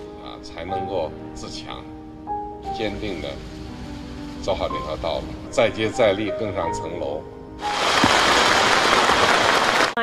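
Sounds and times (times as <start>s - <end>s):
crowd applauding: 7.6s - 10.0s.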